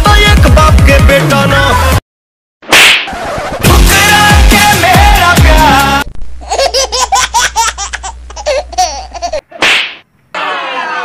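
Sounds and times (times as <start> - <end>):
music with thudding beat: 0.0 - 1.4, 3.6 - 5.8
brief swish: 2.7 - 3.4, 9.6 - 10.0
comic high-pitched laughter effect: 6.4 - 9.4.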